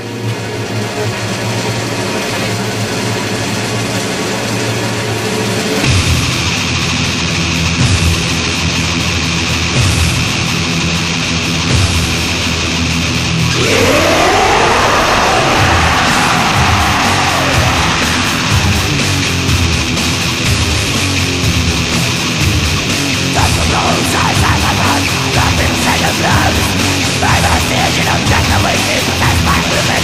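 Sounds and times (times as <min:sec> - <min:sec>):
thrash metal music: 0:00.2 - 0:30.0
distorted electric guitar: 0:05.8 - 0:30.0.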